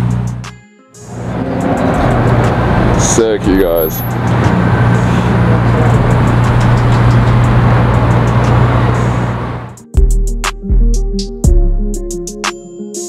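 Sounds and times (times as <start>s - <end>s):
car engine hum: 0.0s - 9.8s
road noise: 0.0s - 9.8s.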